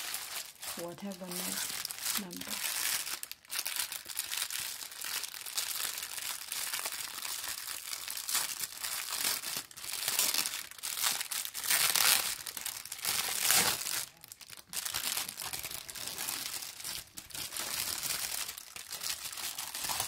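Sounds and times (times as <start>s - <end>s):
plastic bag crinkling: 0.0s - 20.0s.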